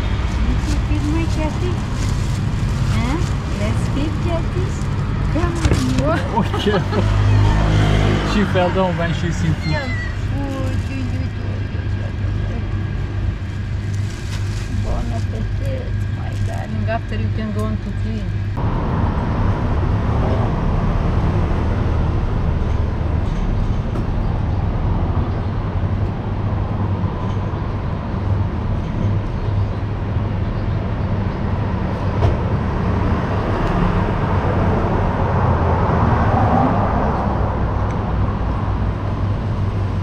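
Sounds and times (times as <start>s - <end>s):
low outdoor rumble: 0.0s - 40.0s.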